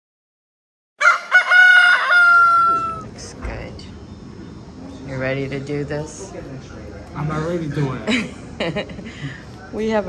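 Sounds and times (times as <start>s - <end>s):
rooster crowing: 1.0s - 3.1s.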